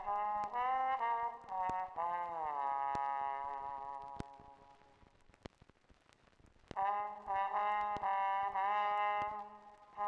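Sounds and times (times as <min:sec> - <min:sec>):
brass chord: 0:00.0 - 0:04.8, 0:06.8 - 0:10.0.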